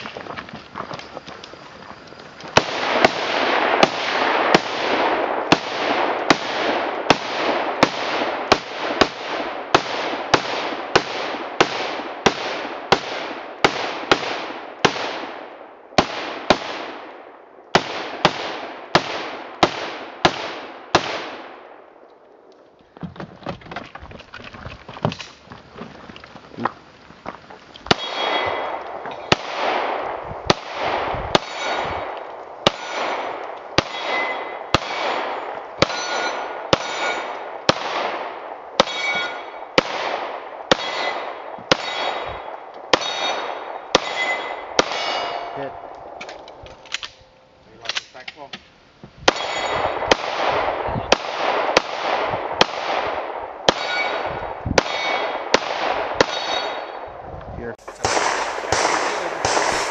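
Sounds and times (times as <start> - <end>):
rifle shots echoing: 2.5 - 22.0, 27.9 - 48.2, 49.3 - 57.2, 57.8 - 59.9
steel targets ringing: 31.4 - 32.0, 32.7 - 37.4, 38.8 - 39.6, 40.8 - 45.9, 49.3 - 50.0, 53.7 - 54.2, 56.2 - 57.0
gun handling clicks: 45.8 - 48.5
handgun shots: 57.9 - 59.9.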